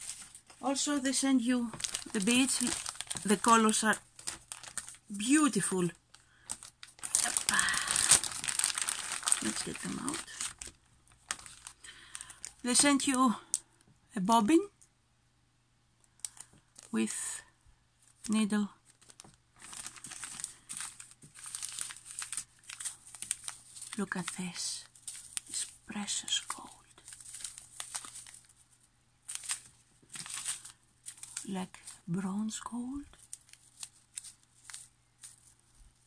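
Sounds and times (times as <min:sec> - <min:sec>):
plastic bag crinkling: 0:00.0 - 0:13.6, 0:16.2 - 0:17.0, 0:18.1 - 0:36.0.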